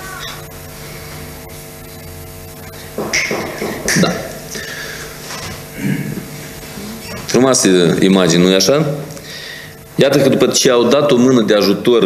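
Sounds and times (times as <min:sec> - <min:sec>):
faint static hiss: 0:00.0 - 0:03.0
electrical mains hum: 0:00.0 - 0:12.0.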